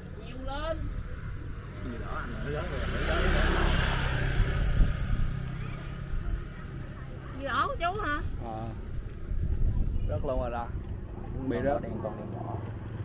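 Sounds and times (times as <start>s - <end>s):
vehicle passing by: 0.0s - 9.5s, 10.2s - 13.0s.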